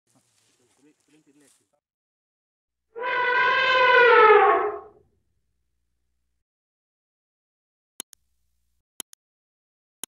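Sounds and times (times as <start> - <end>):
elephant trumpeting: 3.0 - 5.0.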